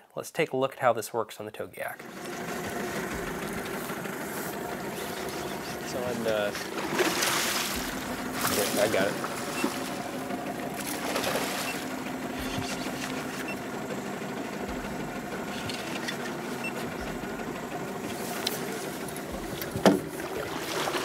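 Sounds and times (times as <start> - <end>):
outboard motor humming: 2.0 - 21.0.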